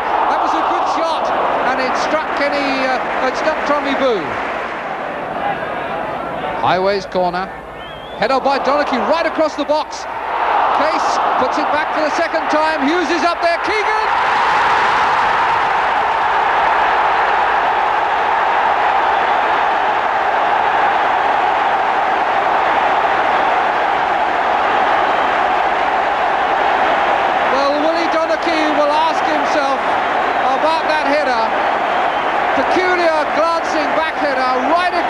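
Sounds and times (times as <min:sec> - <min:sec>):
football crowd roaring and cheering: 0:00.0 - 0:35.0.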